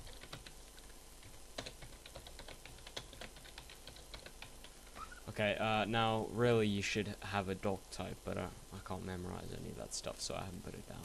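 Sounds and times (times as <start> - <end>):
computer keyboard typing: 0.0 - 4.8.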